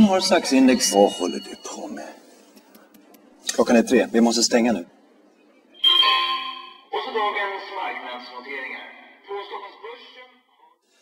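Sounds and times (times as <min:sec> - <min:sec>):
bell-like chimes ringing: 0:00.0 - 0:02.2.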